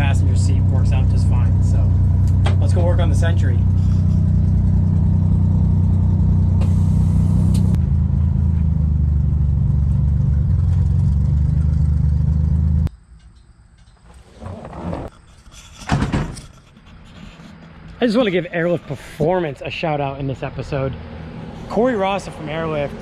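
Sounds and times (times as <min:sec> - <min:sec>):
car engine running: 0:00.0 - 0:12.9.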